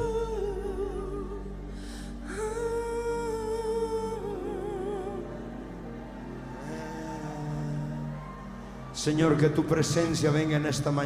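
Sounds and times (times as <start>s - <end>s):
person singing long notes: 0.0s - 9.4s
sustained keyboard pad chord: 0.0s - 11.0s.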